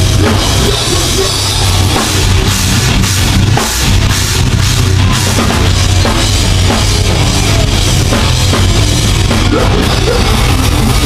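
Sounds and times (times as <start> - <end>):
metal band playing live: 0.0 - 11.0.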